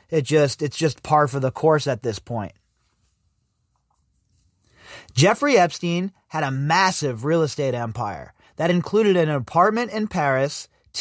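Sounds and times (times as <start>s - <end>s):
man breathing in: 4.6s - 5.2s.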